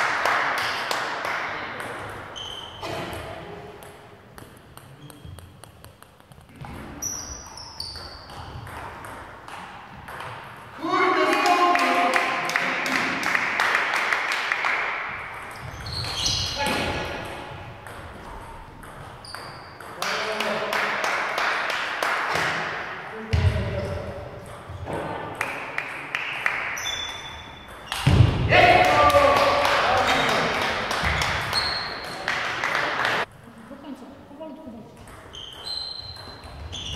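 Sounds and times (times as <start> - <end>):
table tennis ball clicking: 3.8 - 6.5.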